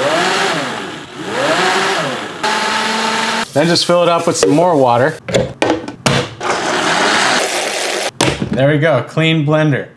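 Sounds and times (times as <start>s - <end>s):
blender running: 0.0s - 3.5s, 6.4s - 8.1s.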